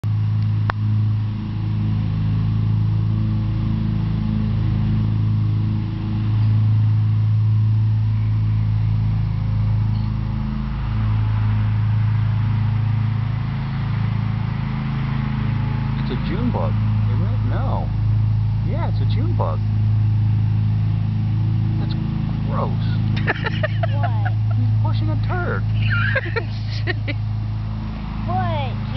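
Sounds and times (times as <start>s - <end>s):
low mechanical hum: 0.0s - 28.9s.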